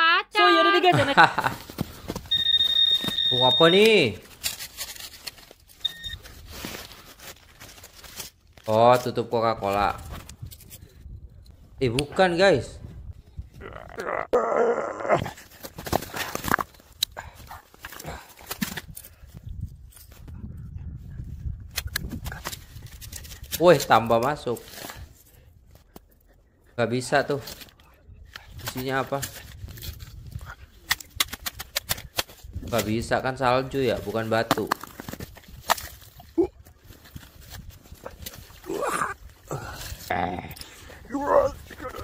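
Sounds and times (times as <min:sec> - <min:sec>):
high-pitched electronic beep: 0:02.3 - 0:03.8, 0:05.8 - 0:06.2.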